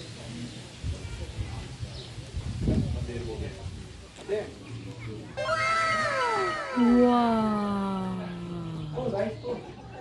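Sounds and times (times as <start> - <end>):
children calling ooh: 5.4 - 8.9
man's deep ooh call: 5.4 - 9.0.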